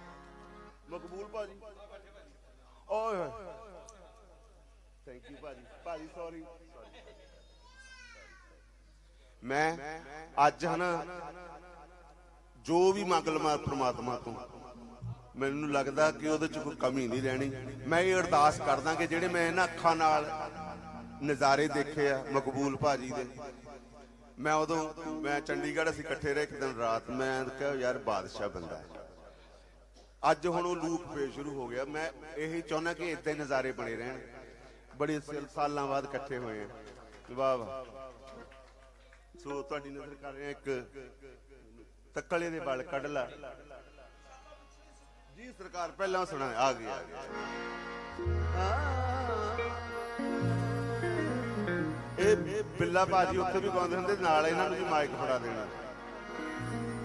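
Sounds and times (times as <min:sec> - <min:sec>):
man's voice at microphone: 0:00.8 - 0:03.6, 0:05.0 - 0:07.0, 0:09.4 - 0:11.3, 0:12.6 - 0:29.1, 0:30.2 - 0:38.5, 0:39.4 - 0:47.4, 0:52.2 - 0:56.0.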